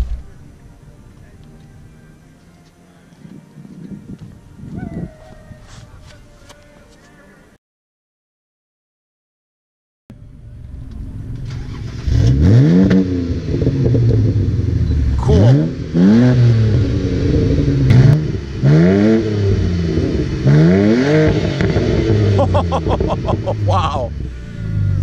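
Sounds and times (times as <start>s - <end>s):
car engine idling: 10.1s - 20.5s, 21.4s - 25.0s
car engine revving: 10.1s - 25.0s.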